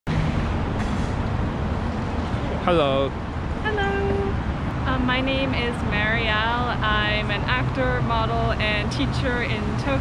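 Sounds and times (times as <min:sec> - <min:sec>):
road traffic going by: 0:00.1 - 0:10.0.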